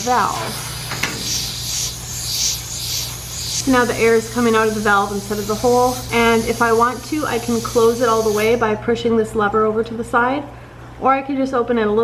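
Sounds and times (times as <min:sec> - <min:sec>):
threads rubbing: 0:00.0 - 0:08.6
air hissing from pipe: 0:00.0 - 0:08.8.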